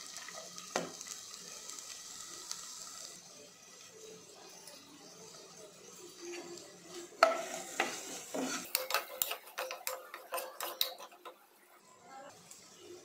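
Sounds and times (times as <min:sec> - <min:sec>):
faint frying sizzle: 0:00.0 - 0:13.0
ladle knocking and scraping pot: 0:07.2 - 0:11.4.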